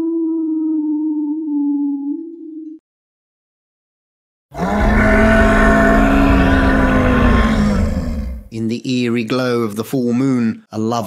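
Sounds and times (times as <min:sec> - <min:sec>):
deep rasping werewolf growl: 0:04.6 - 0:08.5.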